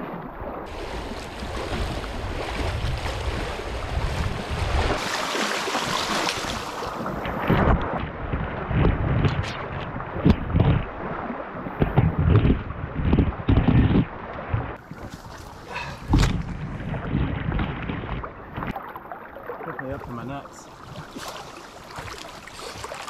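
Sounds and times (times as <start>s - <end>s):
wind buffeting microphone: 0.6s - 5.0s, 5.8s - 18.8s
water sloshing around legs: 4.9s - 7.2s, 14.8s - 16.5s, 18.2s - 23.0s.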